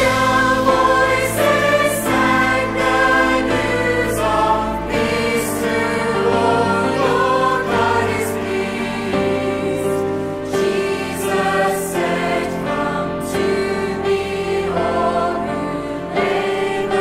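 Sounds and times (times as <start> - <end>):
mixed choir singing worship song: 0.0 - 17.0.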